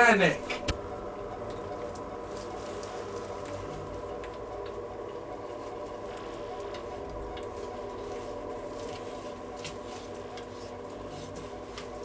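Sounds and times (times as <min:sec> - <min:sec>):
drone of held tones: 0:00.0 - 0:12.0
faint clicks and rustles: 0:00.4 - 0:12.0.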